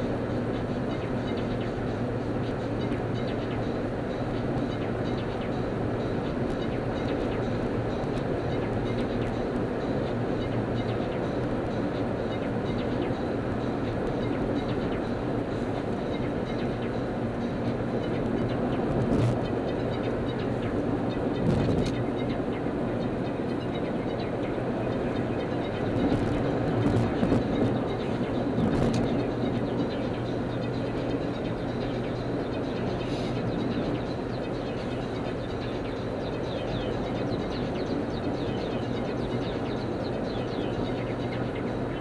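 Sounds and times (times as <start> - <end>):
car road and engine noise: 0.0 - 42.0.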